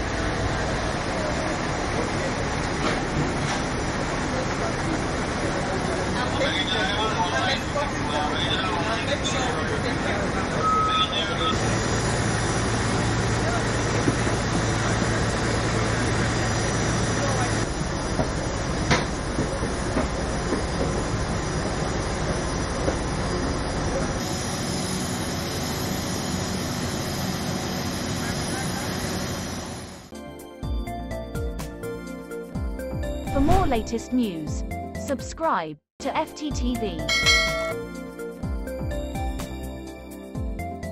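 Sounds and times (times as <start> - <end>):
aircraft and ground equipment noise: 0.0 - 30.1
people talking: 4.2 - 11.6, 33.4 - 37.2.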